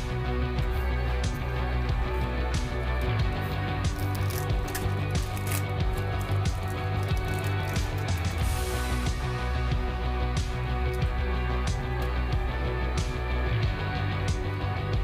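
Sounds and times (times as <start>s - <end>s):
background music: 0.0s - 15.0s
cards being handled: 2.6s - 8.5s
foil pack tearing: 3.9s - 8.4s.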